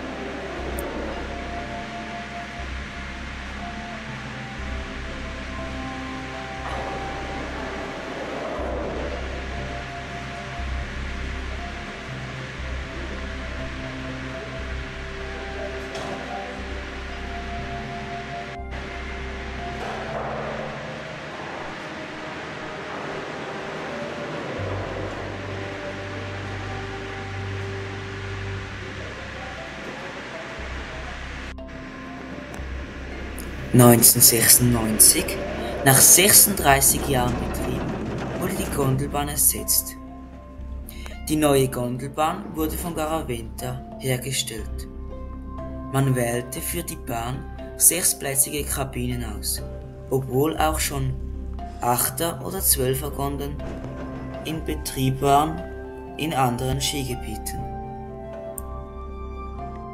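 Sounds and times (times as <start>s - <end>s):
slow held music chords: 0.0s - 59.9s.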